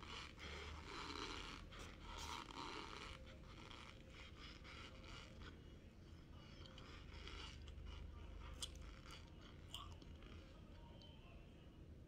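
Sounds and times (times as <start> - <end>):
metal spoon scraping cornstarch: 0.0 - 5.6, 6.4 - 9.6.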